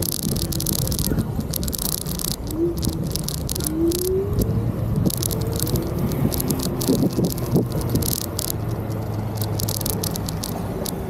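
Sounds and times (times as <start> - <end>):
camera handling rumble and rattling: 0.0 - 11.0.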